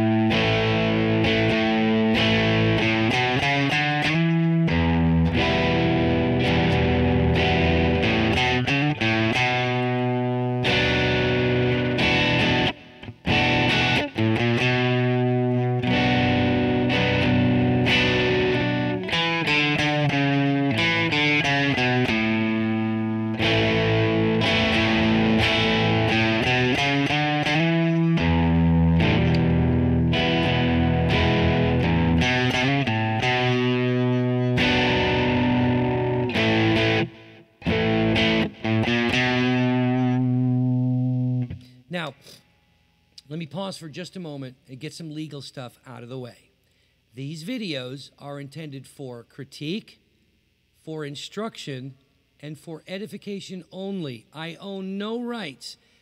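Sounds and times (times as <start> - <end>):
distorted electric guitar chords: 0.0 - 42.4.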